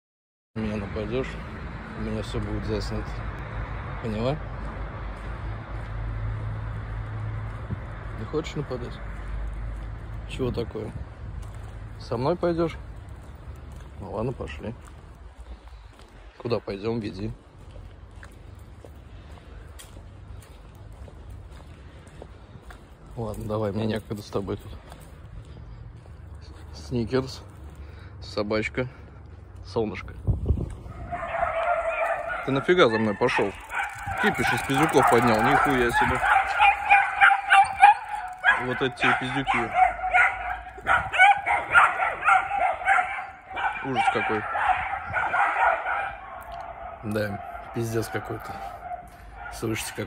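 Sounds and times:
footsteps on gravel: 4.6s - 28.0s, 29.0s - 44.1s
dogs barking and yapping: 30.7s - 50.0s.

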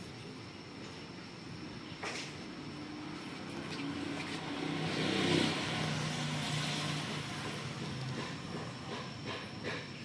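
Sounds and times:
vehicle engine hum: 2.2s - 9.8s
hiss: 4.4s - 10.0s.

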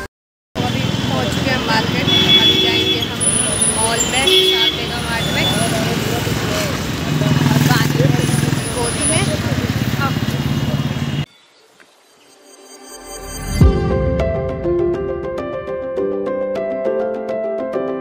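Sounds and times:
motorbikes passing: 0.6s - 11.3s
people's voices: 0.6s - 11.3s
road traffic: 0.6s - 12.0s.

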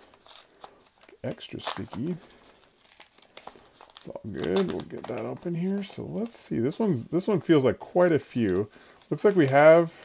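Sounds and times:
envelope flap being peeled open: 0.0s - 5.4s
paper tearing crackles: 0.0s - 6.4s.

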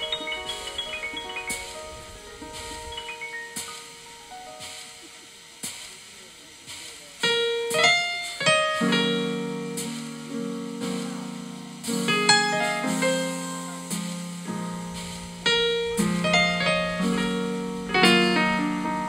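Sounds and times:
electronic keyboard playing: 0.0s - 5.6s, 7.2s - 19.0s.

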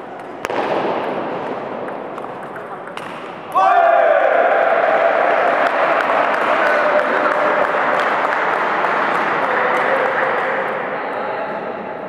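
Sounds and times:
table tennis ball hits: 0.2s - 3.8s
loud shout: 3.5s - 8.0s.

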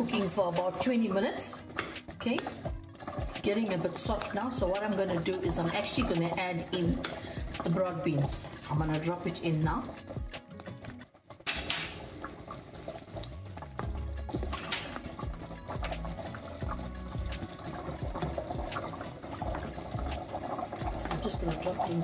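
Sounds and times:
curry bubbling in a pot: 0.0s - 22.0s.

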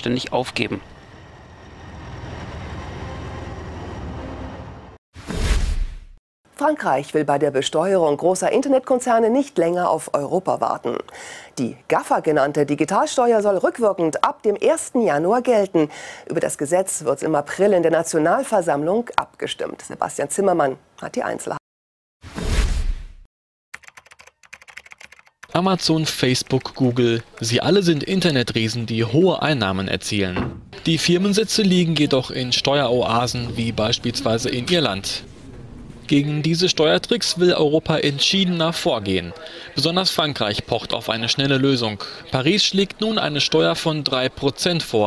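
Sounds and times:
heavy vehicles engine rumble: 0.0s - 5.0s, 30.1s - 38.2s
rapid typing on laptop keyboard: 23.8s - 27.5s
swoosh transition sound: 32.6s - 37.3s.

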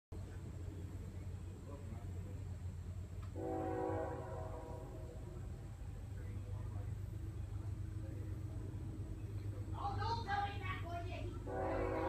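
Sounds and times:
low background rumble: 0.1s - 12.0s
distant locomotive air horn: 3.3s - 5.6s, 11.4s - 12.0s.

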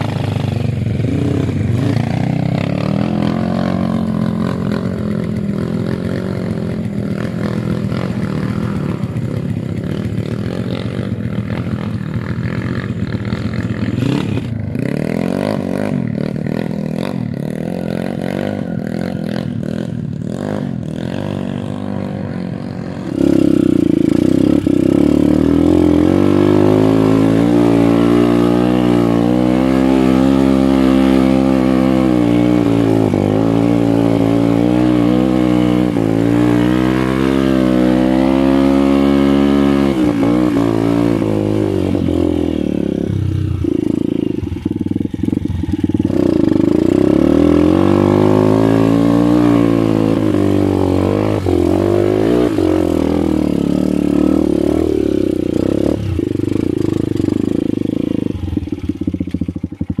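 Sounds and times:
dirt bike engine revving: 0.0s - 60.0s.

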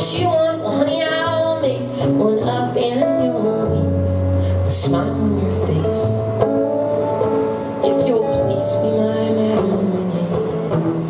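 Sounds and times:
electric guitar chords: 0.0s - 11.0s.

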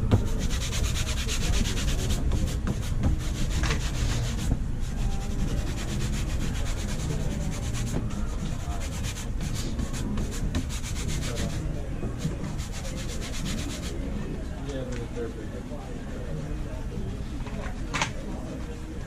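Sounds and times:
cloth rubbing a sneaker: 0.0s - 11.6s, 12.2s - 14.0s.

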